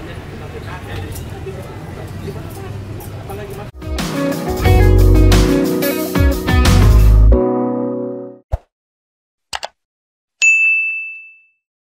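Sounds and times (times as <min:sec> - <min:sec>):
mouse double click: 0:09.6 - 0:09.8
notification bell ding: 0:10.4 - 0:11.6.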